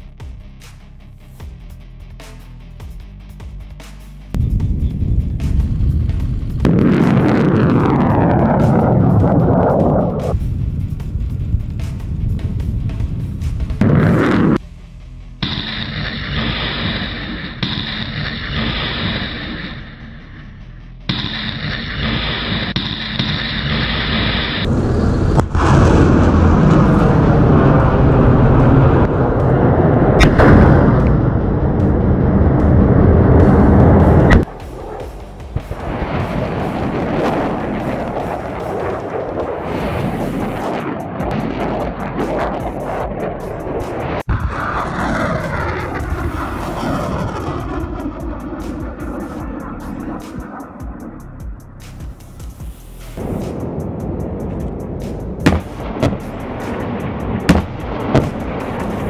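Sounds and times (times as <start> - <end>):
rocket motors roaring: 4.4 - 10.6, 21.2 - 51.4, 53.2 - 59.0
sharp cracks: 30.2 - 31.2, 53.2 - 59.0.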